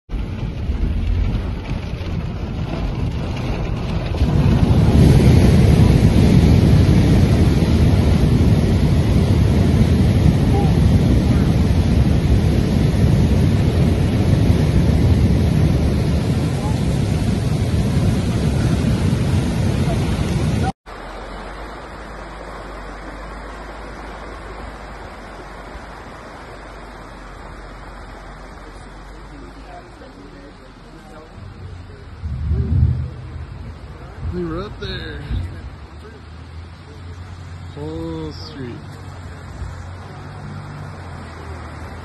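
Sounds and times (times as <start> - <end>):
wind buffeting microphone: 0.1 - 20.7, 31.4 - 35.9
mudflow rushing: 0.1 - 42.0
rain: 0.1 - 42.0.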